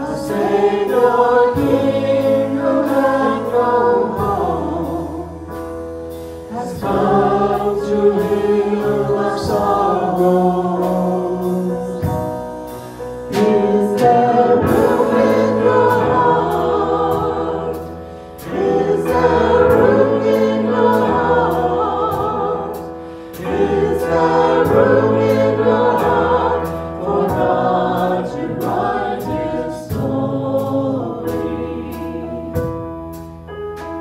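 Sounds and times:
group singing in harmony: 0:00.0 - 0:33.0
instrumental accompaniment: 0:00.0 - 0:34.0.

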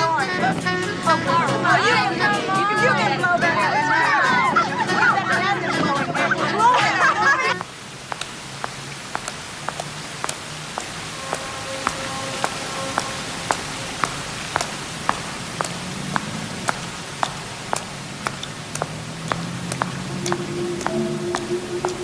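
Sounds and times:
street ambience hiss: 0:00.0 - 0:22.0
heels clicking on wet pavement: 0:07.6 - 0:22.0
sparse film score notes: 0:07.6 - 0:22.0.

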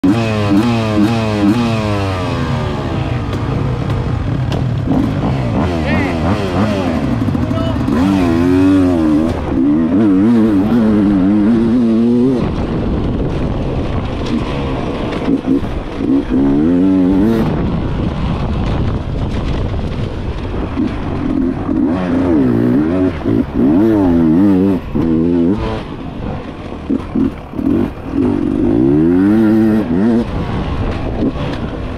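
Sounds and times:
motorcycle engine revving: 0:00.0 - 0:31.9.

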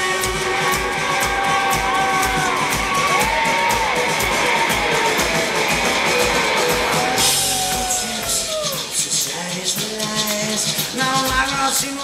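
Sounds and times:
electric guitar lead: 0:00.0 - 0:09.0
drum kit beat: 0:00.0 - 0:12.0.

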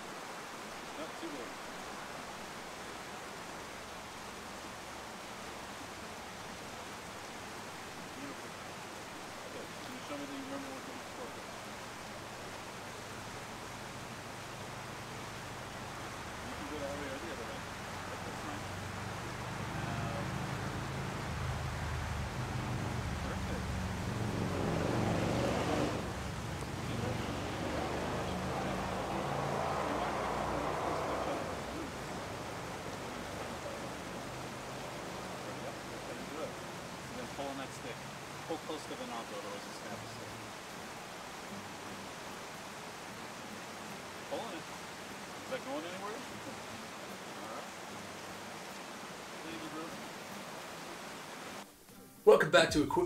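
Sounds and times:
creek running over rocks: 0:00.0 - 0:53.0.

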